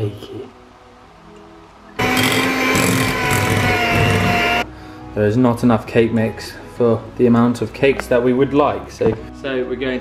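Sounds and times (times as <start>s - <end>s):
faint background music: 0.0s - 10.0s
electric mixer whining: 2.0s - 4.6s.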